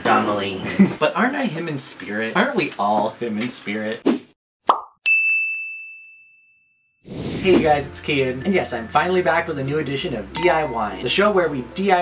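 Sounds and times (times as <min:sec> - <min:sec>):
high bell-like ding: 0:05.0 - 0:06.9, 0:10.4 - 0:11.3.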